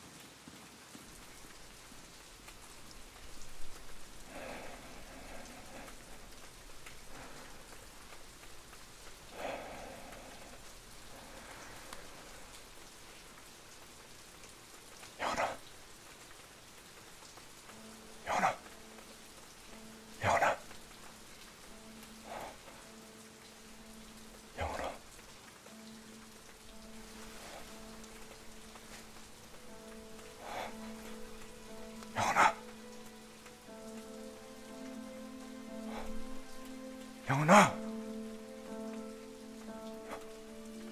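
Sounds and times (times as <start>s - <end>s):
steady rain falling: 0.0s - 40.9s
low musical drone: 17.4s - 40.9s.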